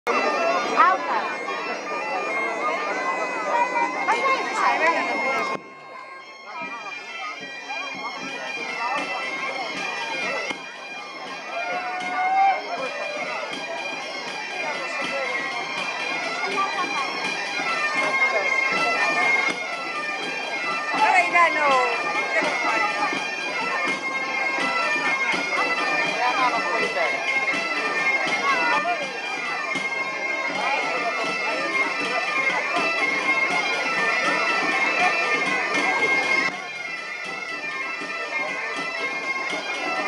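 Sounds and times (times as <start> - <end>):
crowd chatter: 0.0 - 40.0
bagpipes playing lively melody: 0.1 - 40.0
drums beating: 3.7 - 40.0.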